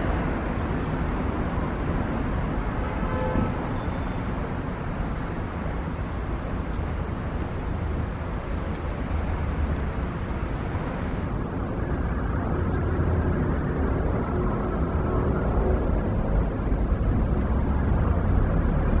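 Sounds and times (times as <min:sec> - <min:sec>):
traffic hiss: 0:00.0 - 0:11.5
traffic rumble: 0:00.0 - 0:19.0.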